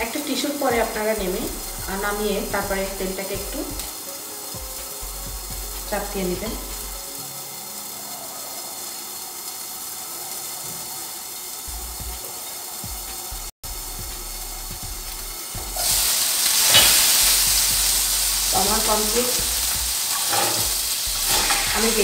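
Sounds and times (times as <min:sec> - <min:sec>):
faint hiss from pan: 0:00.0 - 0:22.0
patty sizzling in hot oil: 0:00.0 - 0:22.0.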